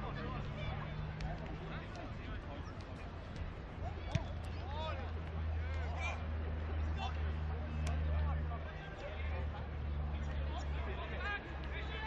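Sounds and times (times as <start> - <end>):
players shouting: 0.0 - 12.0.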